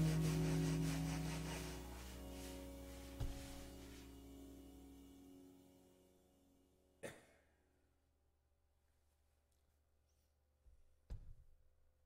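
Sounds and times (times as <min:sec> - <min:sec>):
electronic backing pad: 0:00.0 - 0:07.0.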